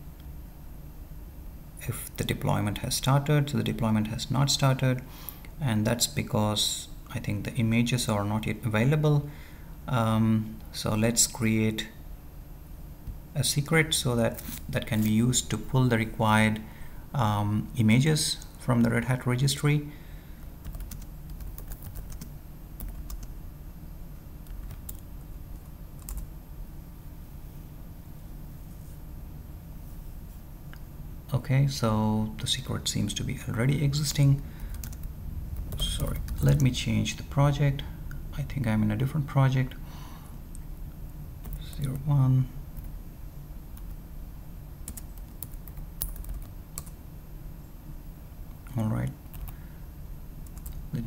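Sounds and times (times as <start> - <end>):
faint steady hum: 0.0 - 51.0
computer keyboard typing: 20.6 - 23.4, 24.4 - 26.3, 34.6 - 36.8, 44.8 - 47.0, 49.3 - 49.6, 50.4 - 50.8.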